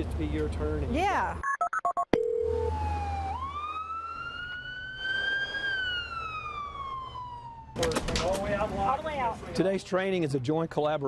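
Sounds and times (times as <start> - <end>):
ambulance siren wailing: 2.4 - 7.9.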